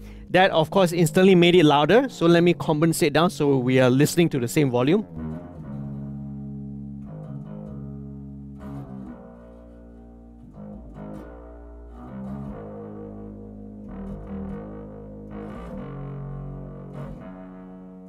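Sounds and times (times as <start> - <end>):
overdriven electric bass: 0.0 - 18.0.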